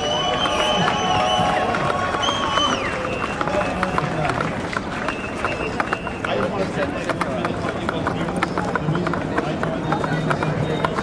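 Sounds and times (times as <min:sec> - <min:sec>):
rally crowd: 0:00.0 - 0:11.0.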